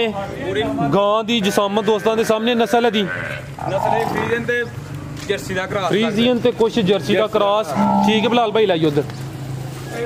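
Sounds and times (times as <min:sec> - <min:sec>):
men talking: 0:00.0 - 0:10.0
calf bleating: 0:01.5 - 0:04.4, 0:07.7 - 0:08.4.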